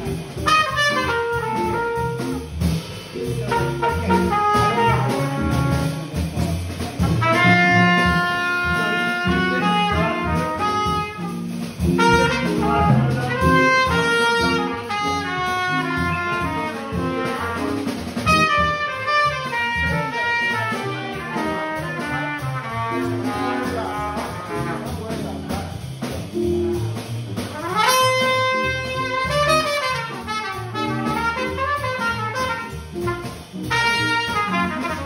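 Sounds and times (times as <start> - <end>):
trumpet melody: 0.0 - 2.8, 3.4 - 6.4, 7.0 - 25.6, 27.4 - 35.0
bass: 0.0 - 35.0
drums: 0.0 - 35.0.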